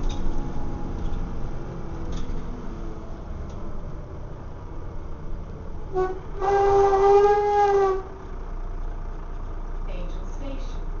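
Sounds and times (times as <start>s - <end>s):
bus running noise: 0.0s - 11.0s
vehicle horn steady note: 5.9s - 8.2s.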